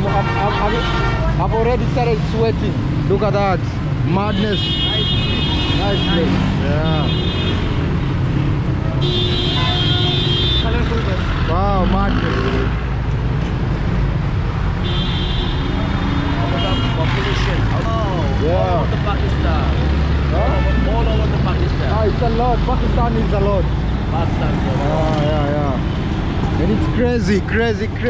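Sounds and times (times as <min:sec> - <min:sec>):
vehicle horn blasts: 0:00.0 - 0:01.3, 0:04.4 - 0:06.4, 0:09.0 - 0:10.9, 0:14.8 - 0:15.7
traffic engines rumbling: 0:00.0 - 0:28.0.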